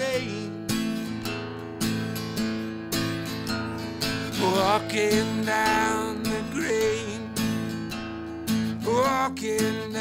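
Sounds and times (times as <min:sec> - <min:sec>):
person singing: 0:00.0 - 0:00.7, 0:04.2 - 0:07.4, 0:08.8 - 0:10.0
acoustic guitar strumming: 0:00.0 - 0:10.0.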